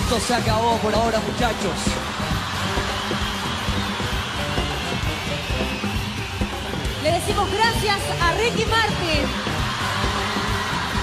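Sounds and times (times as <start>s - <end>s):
large crowd cheering: 0.0s - 11.0s
live band music with bass: 0.0s - 11.0s.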